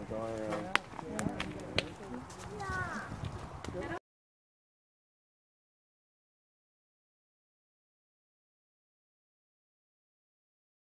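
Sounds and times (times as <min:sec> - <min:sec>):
people talking indistinctly: 0:00.0 - 0:04.0.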